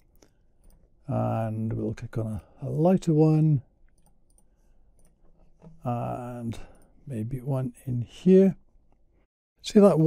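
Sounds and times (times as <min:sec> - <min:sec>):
man talking: 0:01.1 - 0:03.7, 0:05.8 - 0:08.6, 0:09.6 - 0:10.0.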